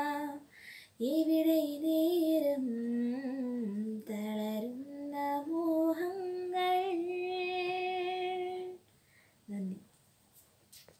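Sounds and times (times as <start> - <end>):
woman singing unaccompanied: 0.0 - 8.8, 9.5 - 9.9.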